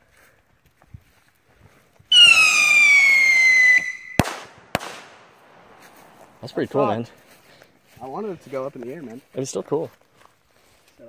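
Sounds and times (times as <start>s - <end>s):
firework whistle falling in pitch: 2.1s - 4.2s
firework bangs: 2.1s - 6.6s.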